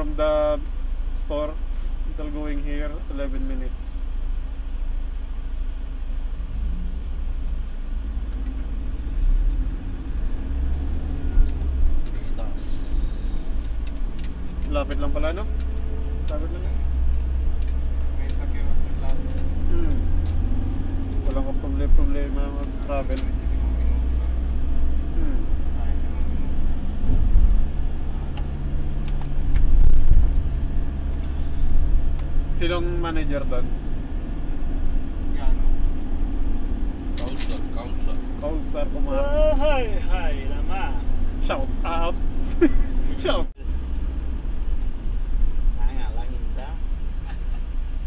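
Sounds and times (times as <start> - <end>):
minibus engine and road noise: 0.0 - 48.0.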